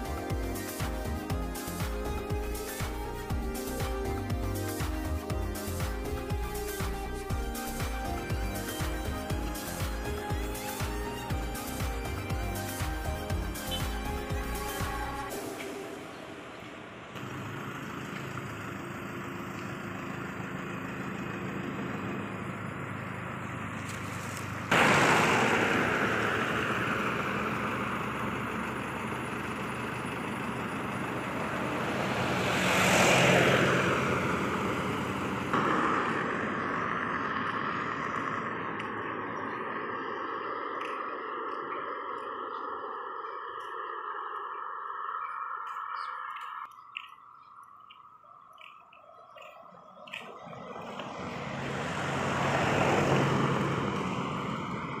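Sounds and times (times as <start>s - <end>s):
engine and road noise: 0.0s - 55.0s
vehicle passing by: 21.0s - 47.1s, 48.6s - 55.0s
high-pitched drone: 24.7s - 47.8s.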